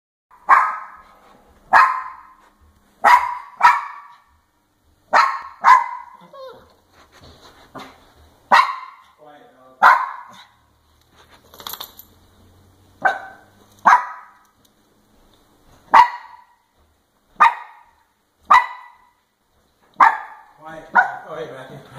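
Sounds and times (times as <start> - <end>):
small dog barking: 0.4 - 1.0, 1.7 - 2.4, 3.0 - 4.3, 5.1 - 6.7, 8.5 - 9.2, 9.8 - 10.6, 13.0 - 14.4, 15.9 - 16.6, 17.4 - 19.2, 20.0 - 21.4.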